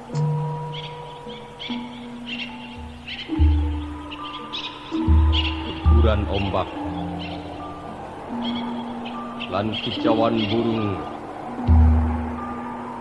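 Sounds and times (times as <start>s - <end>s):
deep gong strokes: 0.0s - 13.0s
gamelan music: 0.0s - 13.0s
high bird chirps: 0.0s - 13.0s.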